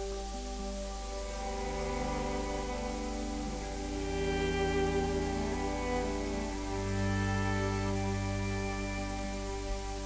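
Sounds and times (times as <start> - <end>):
music of long held chords: 0.0 - 10.0.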